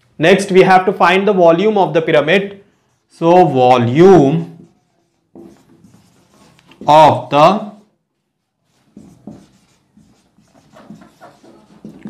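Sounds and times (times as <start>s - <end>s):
marker pen writing on whiteboard: 4.4s - 12.0s.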